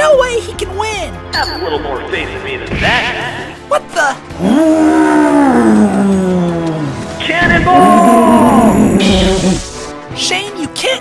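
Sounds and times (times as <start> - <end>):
robot beast howling roar: 4.4 - 6.9, 7.7 - 9.6.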